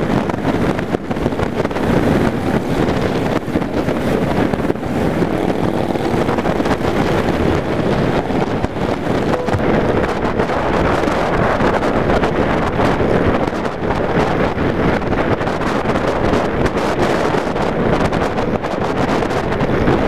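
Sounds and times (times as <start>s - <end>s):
motorcycle engine running: 0.0s - 13.2s
wind buffeting microphone: 0.0s - 20.0s.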